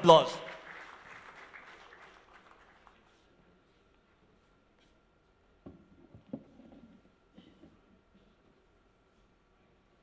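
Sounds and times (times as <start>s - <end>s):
audience applause: 0.0s - 3.2s.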